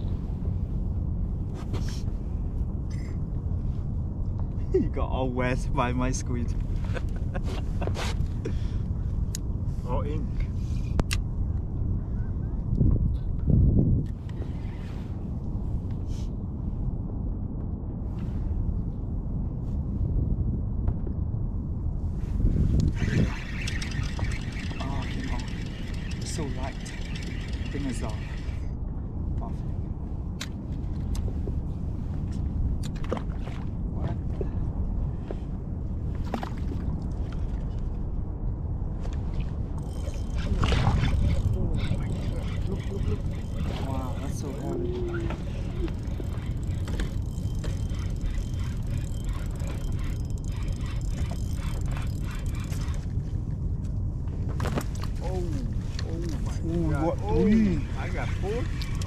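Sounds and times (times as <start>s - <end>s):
low rumble: 0.0s - 59.0s
people talking indistinctly: 23.0s - 28.6s, 41.0s - 46.0s, 55.2s - 59.0s.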